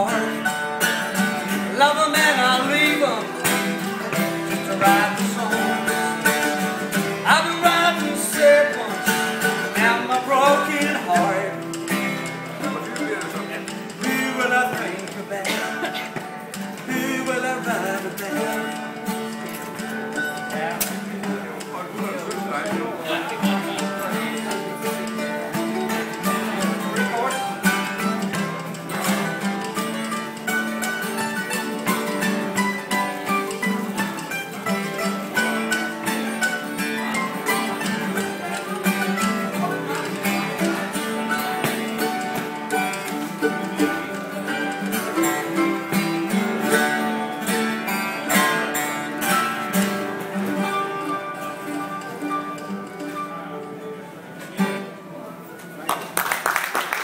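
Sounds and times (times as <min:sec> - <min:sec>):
mandolin and acoustic guitar: 0:00.0 - 0:57.0.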